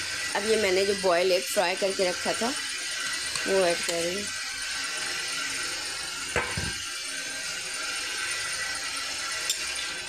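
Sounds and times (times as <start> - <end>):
gravy simmering with hiss: 0.0 - 10.0
metal utensil clinking on pot: 9.5 - 9.8.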